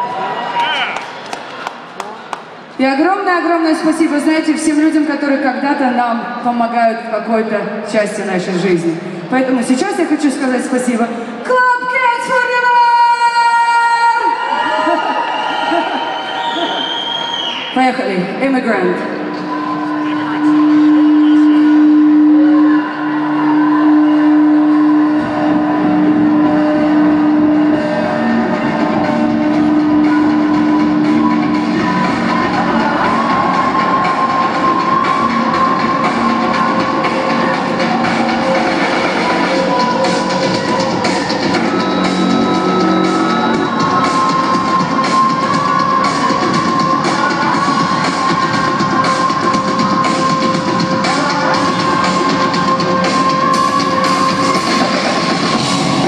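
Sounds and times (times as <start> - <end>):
drums and bass beat: 25.6 - 56.0.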